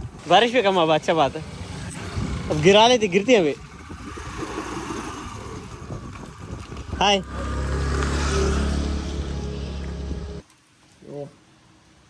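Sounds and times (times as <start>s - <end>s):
scooter engine starting and running: 1.1s - 10.4s.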